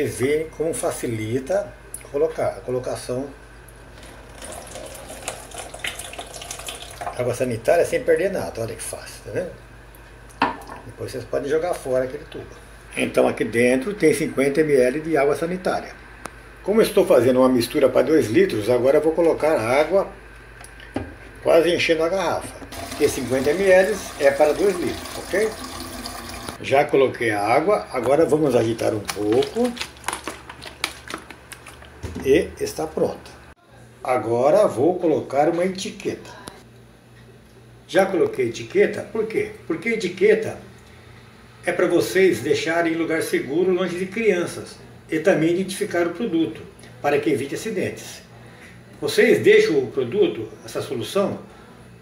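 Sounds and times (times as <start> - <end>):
liquid trickling into funnel: 3.9 - 7.2, 22.7 - 26.6
plastic bottle of liquid shaken: 28.8 - 32.0.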